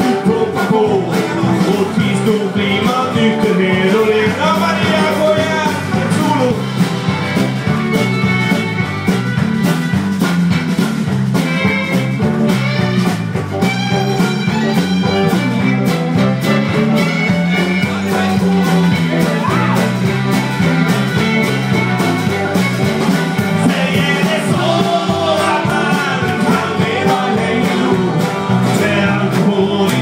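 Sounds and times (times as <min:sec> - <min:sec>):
rock band playing live: 0:00.0 - 0:30.0.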